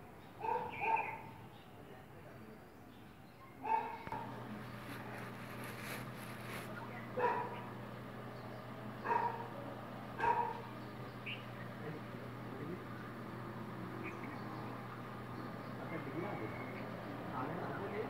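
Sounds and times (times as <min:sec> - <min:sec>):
dog barking: 0:00.4 - 0:01.4, 0:03.6 - 0:04.4, 0:07.2 - 0:07.7, 0:09.0 - 0:09.6, 0:10.2 - 0:10.7
steady low hum: 0:04.1 - 0:18.0.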